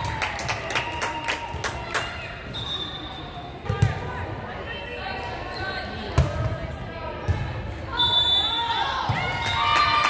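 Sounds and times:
players and spectators voices: 0.0 - 10.0.

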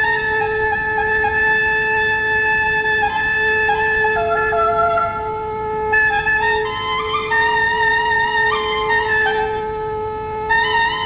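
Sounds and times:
held drone note: 0.0 - 11.0
wind instrument melody: 0.0 - 11.0.

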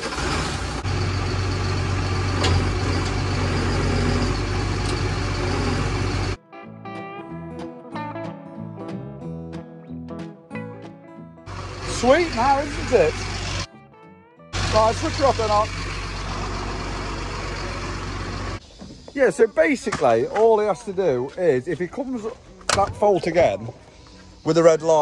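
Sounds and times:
diesel engine running: 0.0 - 6.4, 11.5 - 13.7, 14.5 - 18.6
music with plucked notes: 6.4 - 11.5, 13.7 - 14.6.

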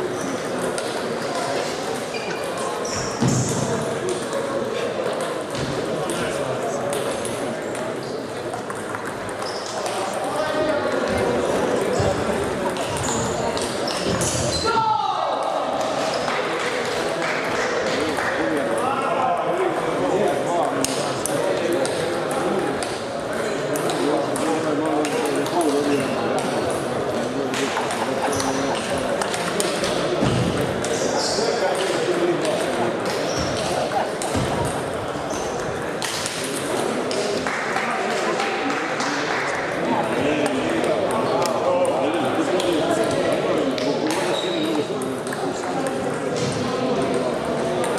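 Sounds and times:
chatter of voices: 0.0 - 47.9
table tennis balls clicking: 0.4 - 14.4, 20.6 - 23.0, 23.6 - 26.9, 27.5 - 31.0, 31.6 - 37.4.

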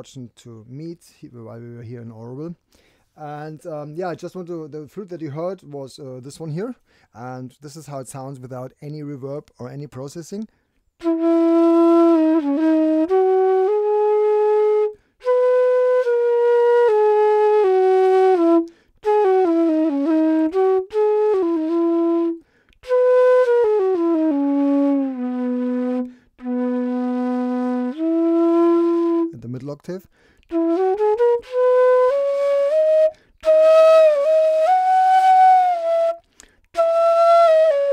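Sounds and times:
bamboo flute melody: 11.0 - 29.4, 30.5 - 37.9.

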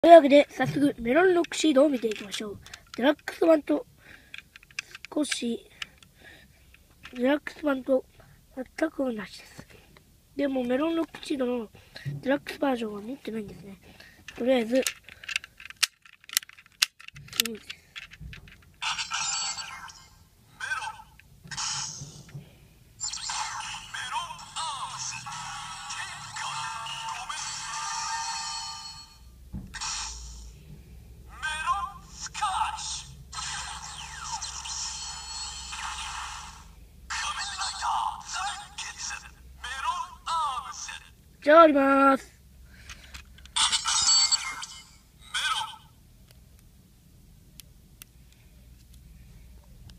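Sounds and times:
toy speaker electronic sound effects: 18.8 - 22.3, 23.0 - 30.6, 31.3 - 41.1, 43.5 - 45.9
warbling electronic tones: 23.0 - 24.5, 33.4 - 36.8.

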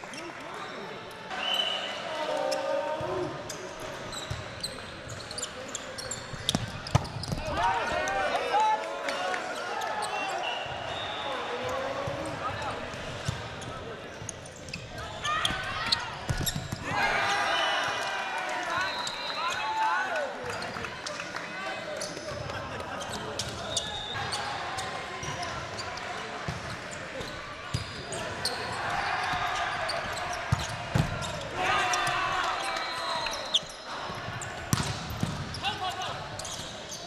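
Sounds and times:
ball hits and bounces on court: 6.3 - 7.6, 14.6 - 17.0, 30.5 - 31.4, 34.5 - 35.7
players shouting: 15.0 - 20.3, 28.1 - 34.9.

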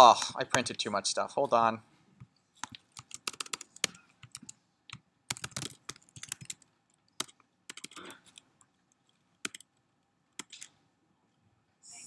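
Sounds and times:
typing on computer keyboard: 2.6 - 8.4, 9.4 - 9.7, 10.4 - 10.7.

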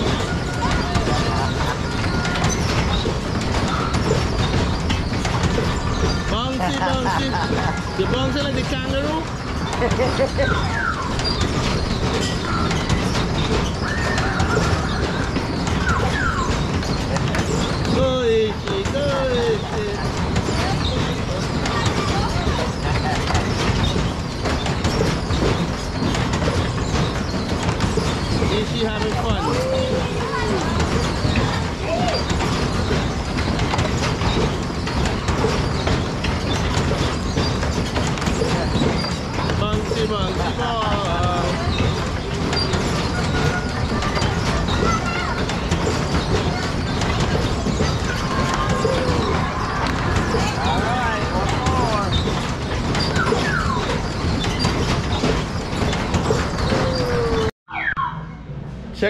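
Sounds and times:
scattered voices: 0.0 - 57.6
ride mechanical rumble and rattle: 0.0 - 59.0.

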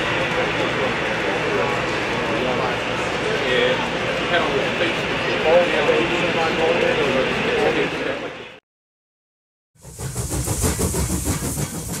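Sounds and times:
train rumbling: 0.0 - 7.9, 9.8 - 12.0.

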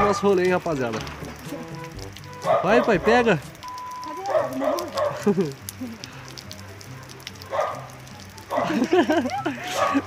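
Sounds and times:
drips on wet concrete: 0.0 - 10.0
rain falling: 0.0 - 10.0.

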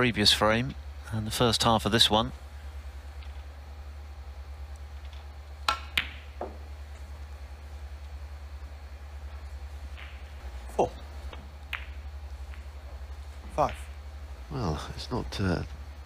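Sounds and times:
low steady hum: 0.0 - 16.0
cue tip striking ball: 5.0 - 6.7, 9.9 - 14.1
snooker balls clicking: 5.0 - 6.7, 9.3 - 14.2.

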